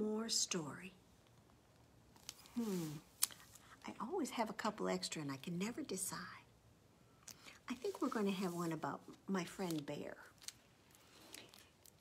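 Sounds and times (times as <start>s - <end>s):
book rustling: 7.7s - 12.0s.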